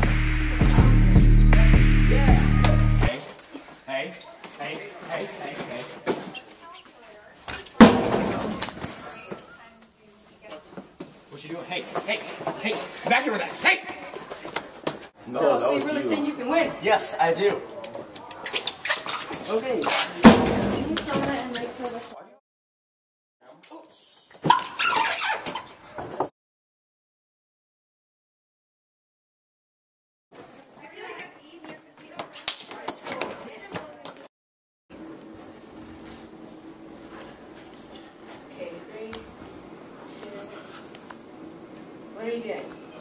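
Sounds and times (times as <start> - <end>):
body slammed against metal lockers: 7.8 - 8.8, 20.3 - 21.2.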